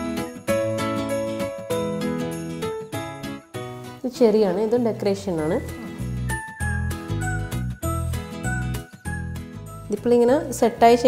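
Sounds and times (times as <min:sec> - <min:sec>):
tinkling bell-like melody: 0:00.0 - 0:03.7, 0:05.4 - 0:10.3.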